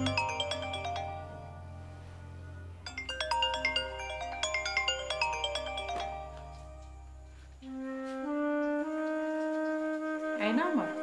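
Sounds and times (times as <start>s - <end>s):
low steady drone: 0.0s - 4.8s
marimba ringtone melody: 0.0s - 7.5s.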